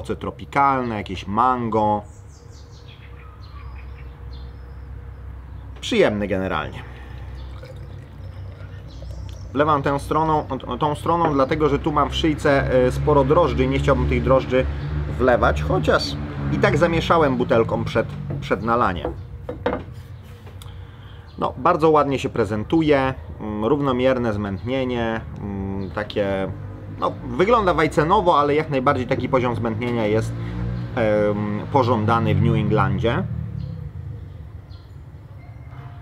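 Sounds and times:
faint high bird chirps: 0:02.0 - 0:05.8, 0:07.2 - 0:11.6
glass knocking on wooden table: 0:19.0 - 0:19.9.

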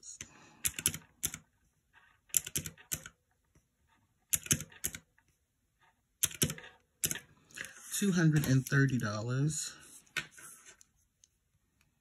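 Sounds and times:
calculator keys clicking: 0:00.6 - 0:01.4, 0:02.3 - 0:03.2, 0:04.3 - 0:05.1, 0:06.2 - 0:07.2.

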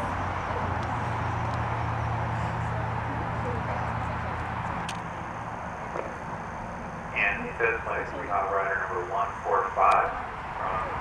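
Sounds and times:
murmur of people talking: 0:00.0 - 0:11.0
steady low hum: 0:00.0 - 0:11.0.

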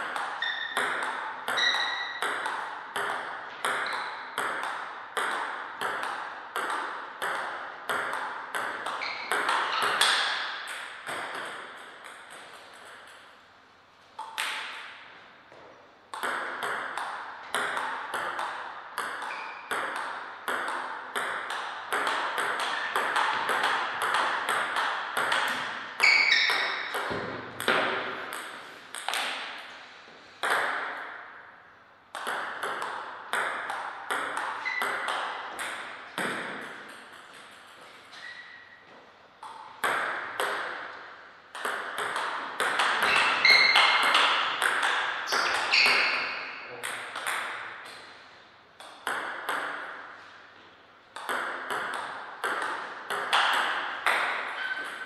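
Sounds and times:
table tennis ball clicking: 0:16.1 - 0:29.4, 0:32.2 - 0:38.3, 0:51.2 - 0:55.0.

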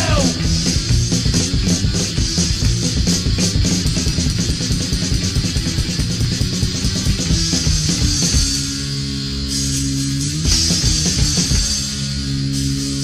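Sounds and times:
bass guitar: 0:00.0 - 0:13.0
distorted electric guitar: 0:00.0 - 0:13.0
drums: 0:00.0 - 0:13.0.

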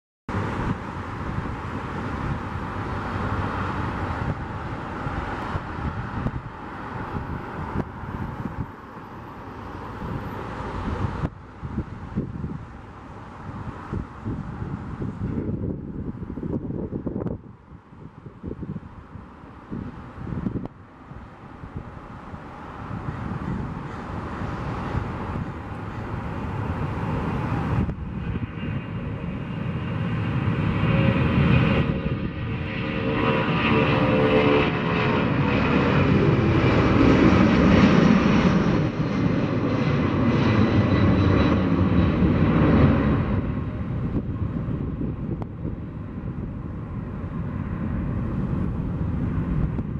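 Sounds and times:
jet engines at takeoff power: 0:00.3 - 0:49.9
rising engine whine: 0:00.3 - 0:49.9.

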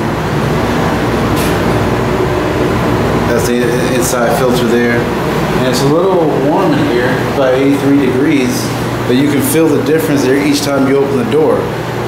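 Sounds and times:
ventilation fans running: 0:00.0 - 0:12.0.

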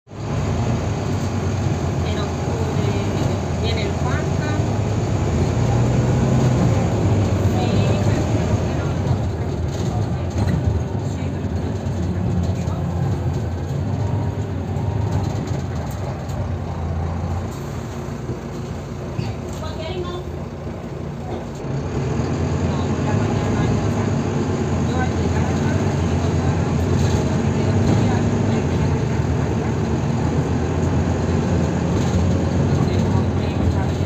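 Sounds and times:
bus engine drone: 0:00.1 - 0:34.0.

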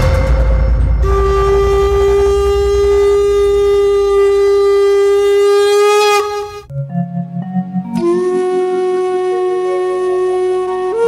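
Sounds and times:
conch shell blown: 0:00.0 - 0:06.7, 0:07.9 - 0:11.0
low rumble: 0:00.0 - 0:06.7.

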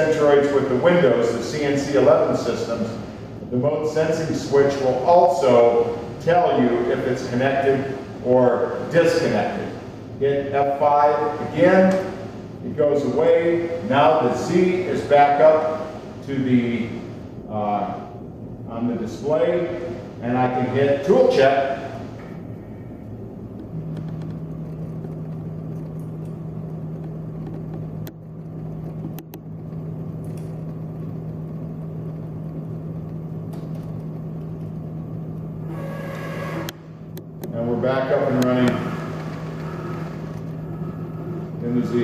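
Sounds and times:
servo motor humming: 0:35.6 - 0:36.9, 0:38.3 - 0:41.6.

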